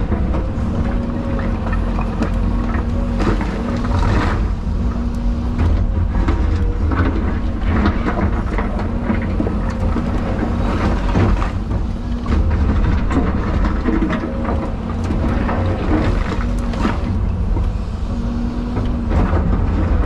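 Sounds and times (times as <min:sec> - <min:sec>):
excavator engine and hydraulics: 0:00.0 - 0:20.0.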